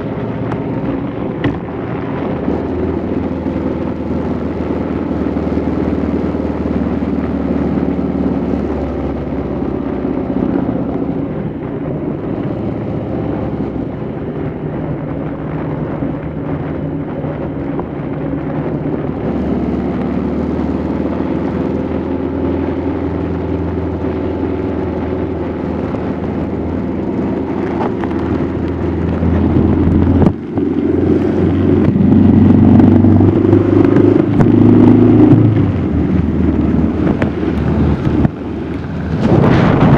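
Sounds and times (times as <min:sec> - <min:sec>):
motorcycle engine running: 0:00.0 - 0:39.9.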